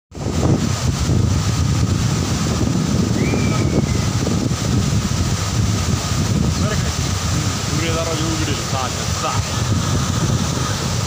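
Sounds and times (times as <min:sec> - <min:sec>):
water rushing from spillway: 0:00.1 - 0:11.0
wind buffeting microphone: 0:00.1 - 0:11.0.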